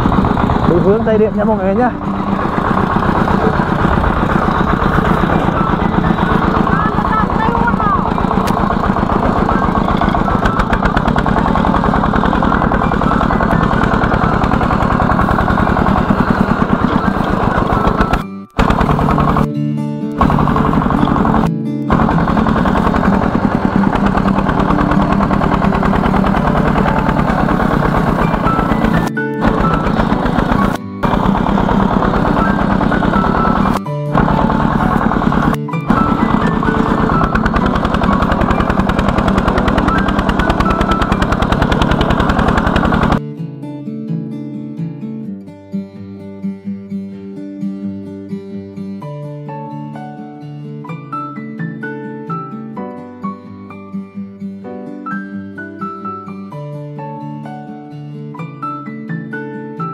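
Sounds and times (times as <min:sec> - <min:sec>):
diesel tractor engine chugging: 0:00.0 - 0:19.5, 0:20.1 - 0:43.2.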